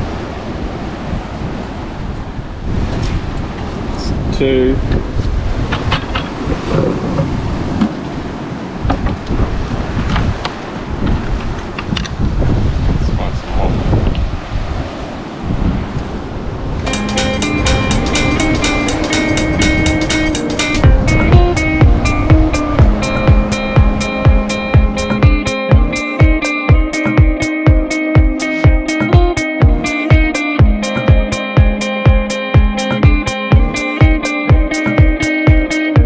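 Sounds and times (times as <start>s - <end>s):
surf: 0.0s - 36.0s
wind: 0.0s - 36.0s
acoustic guitar music: 16.9s - 36.0s.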